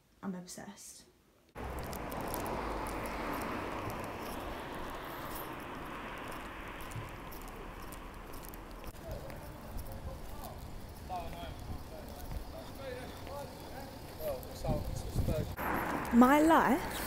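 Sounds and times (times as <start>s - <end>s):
footsteps on pavement: 1.6s - 17.0s.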